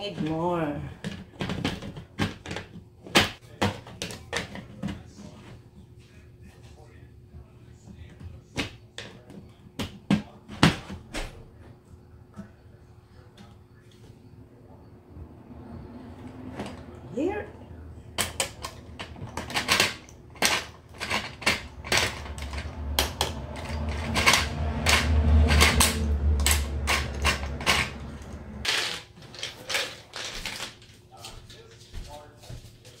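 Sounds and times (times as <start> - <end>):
plastic toy clicking and knocking: 18.2 - 30.7.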